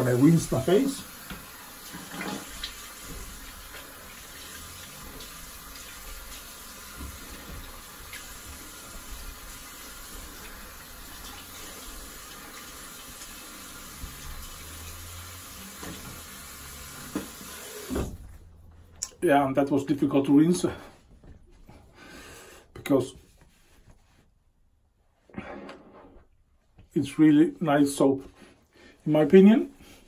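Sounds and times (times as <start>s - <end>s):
tap running into a sink: 1.1s - 18.2s.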